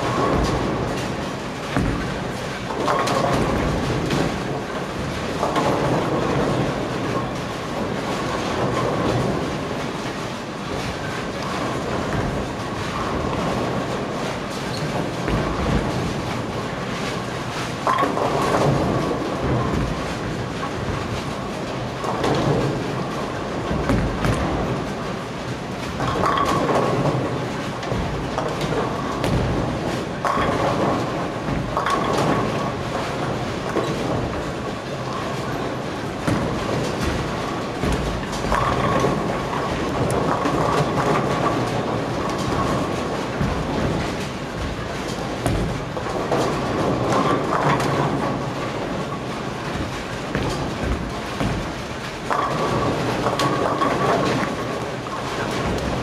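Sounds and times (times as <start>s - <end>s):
bowling balls rolling: 0.0s - 56.0s
bowling pins crashing: 0.0s - 56.0s.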